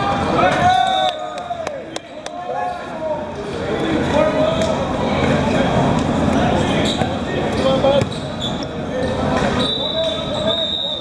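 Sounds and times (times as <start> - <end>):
voices calling out and cheering: 0.0 - 11.0.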